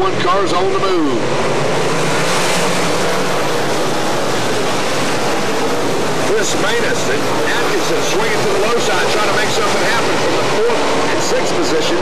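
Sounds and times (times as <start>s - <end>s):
stock car engines roaring: 0.0s - 12.0s.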